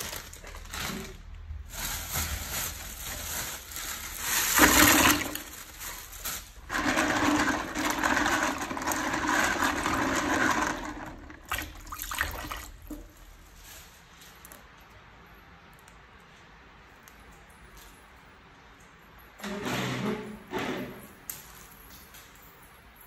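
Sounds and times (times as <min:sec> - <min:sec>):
water sloshing in a basin: 0:04.1 - 0:13.4.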